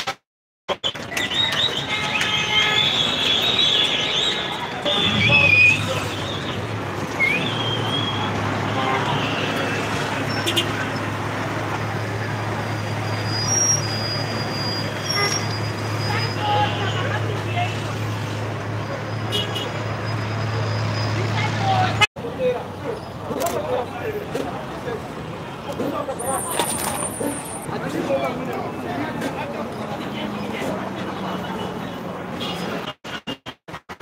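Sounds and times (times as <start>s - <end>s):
city street traffic: 0.0s - 34.0s.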